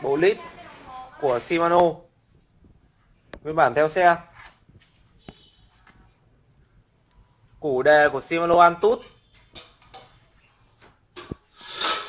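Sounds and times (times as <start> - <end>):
rubbing scrape: 11.5 - 12.0.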